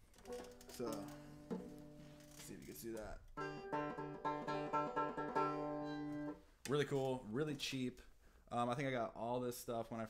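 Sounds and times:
banjo plucked single notes: 0:00.2 - 0:02.6, 0:03.3 - 0:06.4.

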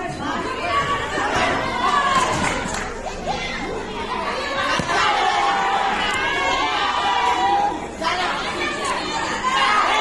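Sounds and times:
crowd chattering and calling out: 0:00.0 - 0:10.0.

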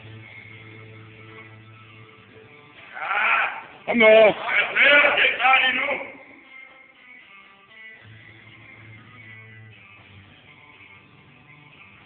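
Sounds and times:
quiet background music: 0:00.0 - 0:12.0
person shouting: 0:02.9 - 0:06.2.

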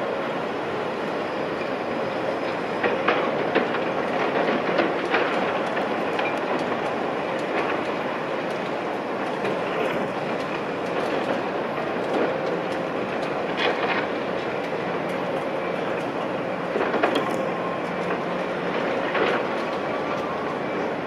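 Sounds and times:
excavator running: 0:00.0 - 0:21.0.

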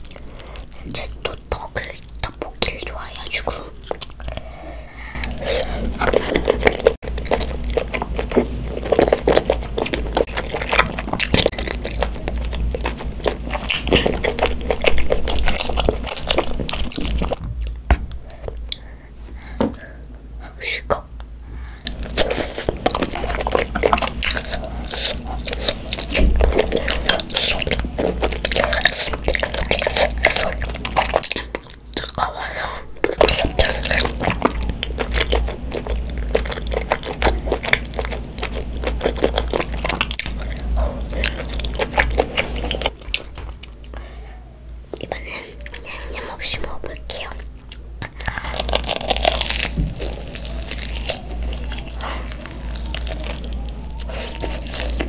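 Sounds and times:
wet chewing sounds: 0:00.0 - 0:04.5, 0:05.1 - 0:19.8, 0:21.6 - 0:44.1, 0:44.9 - 0:55.0
girl talking: 0:00.8 - 0:03.9, 0:20.4 - 0:21.1, 0:45.0 - 0:47.5.

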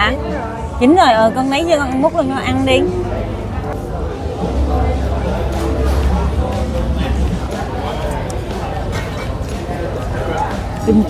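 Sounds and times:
restaurant diners talking: 0:00.0 - 0:11.0.

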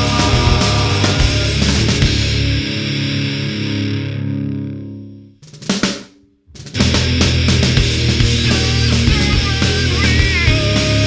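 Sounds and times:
distorted electric guitar chord: 0:00.0 - 0:05.2.

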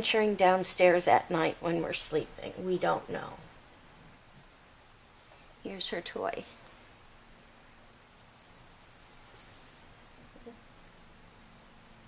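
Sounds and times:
high thin chirps: 0:08.2 - 0:09.7.

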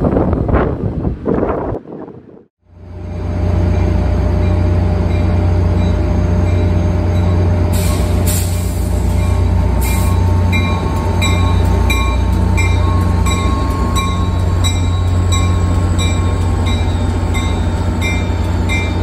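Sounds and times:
diesel locomotives idling: 0:02.8 - 0:19.0
bell ringing: 0:09.2 - 0:19.0.

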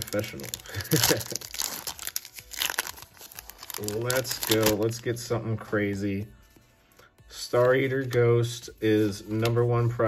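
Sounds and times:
foil wrapper crinkling: 0:00.0 - 0:05.0.

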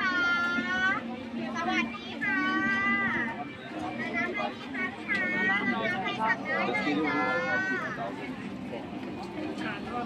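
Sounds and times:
market crowd chatter: 0:00.0 - 0:10.0.

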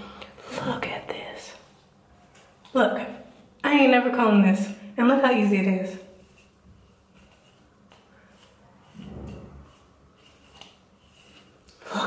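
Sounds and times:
comb strokes through wet hair: 0:05.2 - 0:11.8.

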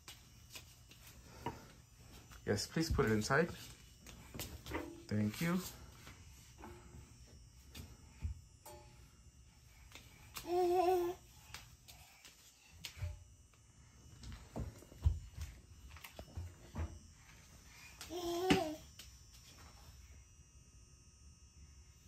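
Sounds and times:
child's wavering sung vocal: 0:10.4 - 0:11.2.

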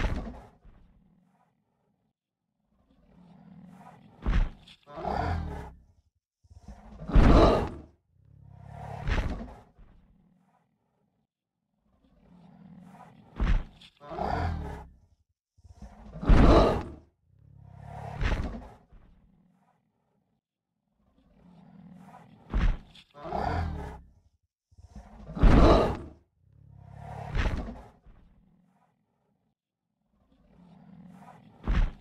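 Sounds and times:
dinosaur roar calls: 0:02.9 - 0:05.9, 0:06.5 - 0:09.6, 0:12.0 - 0:15.0, 0:15.7 - 0:18.8, 0:21.3 - 0:24.1, 0:24.8 - 0:28.0.

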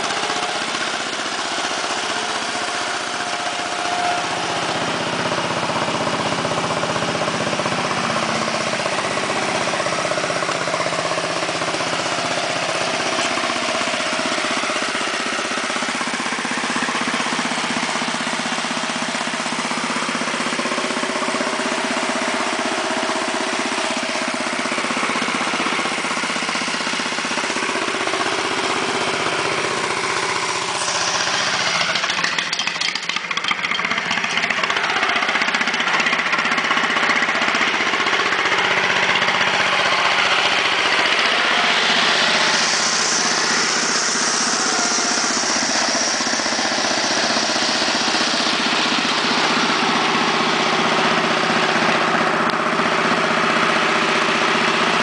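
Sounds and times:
garden tractor engine running: 0:00.0 - 0:55.0.

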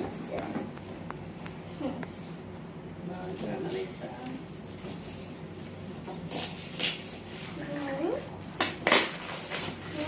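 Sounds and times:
wrapping paper rustling and tearing: 0:06.2 - 0:08.2, 0:08.8 - 0:10.0.

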